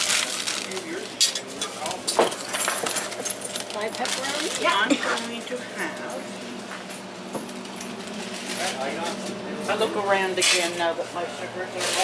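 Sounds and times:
small hard objects clinking: 0.0 - 1.4.

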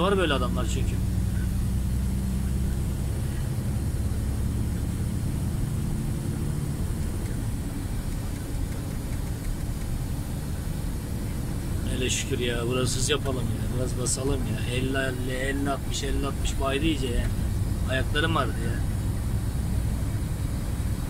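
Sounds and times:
road noise: 0.0 - 21.0
truck diesel engine drone: 0.0 - 21.0.

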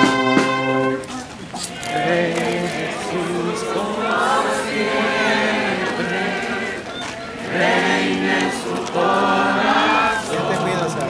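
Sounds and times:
group singing long notes: 0.0 - 11.0.

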